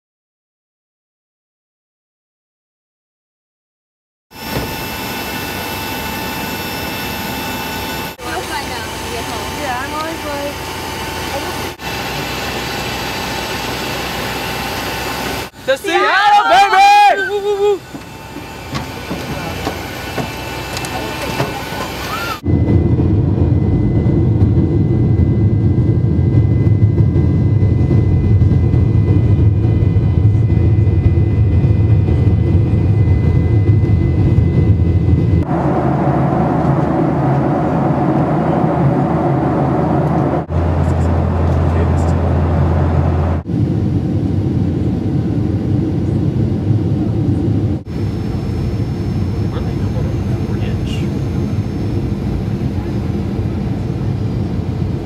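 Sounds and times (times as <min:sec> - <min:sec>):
jet rolling along runway: 0:04.3 - 0:55.0
jet cabin engine and air noise: 0:04.4 - 0:55.0.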